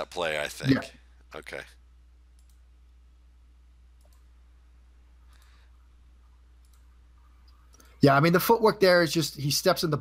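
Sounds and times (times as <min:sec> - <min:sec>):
steady low hum: 0:00.0 - 0:08.2
faint clicks: 0:02.3 - 0:02.7, 0:04.0 - 0:04.3, 0:06.6 - 0:08.0.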